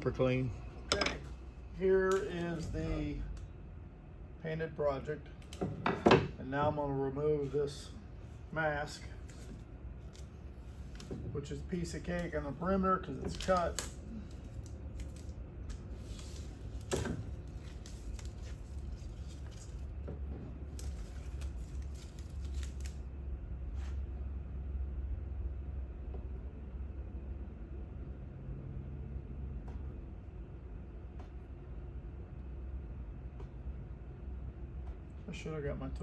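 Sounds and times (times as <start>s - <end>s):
low steady hum: 0.0s - 36.0s
vinyl mask peeling crackles: 13.0s - 20.0s, 20.6s - 23.1s.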